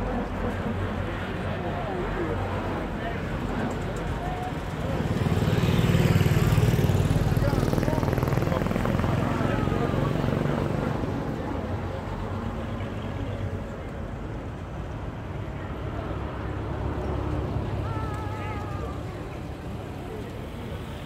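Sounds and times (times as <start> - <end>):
crowd chatter: 0.0 - 21.0
vehicles running: 0.0 - 21.0.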